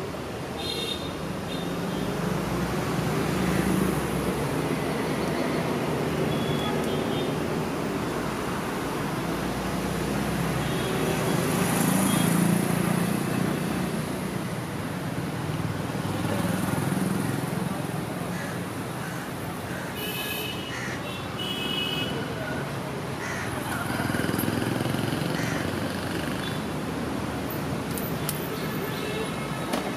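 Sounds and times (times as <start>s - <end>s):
street traffic: 0.0s - 29.9s
vehicles passing: 0.0s - 29.9s.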